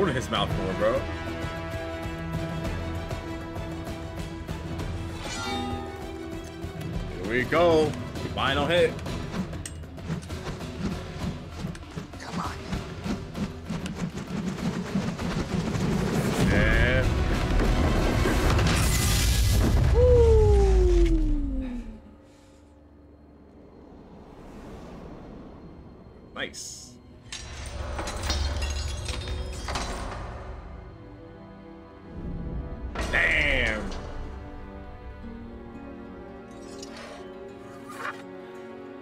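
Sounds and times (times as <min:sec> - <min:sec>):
dramatic music: 0:00.0 - 0:39.0.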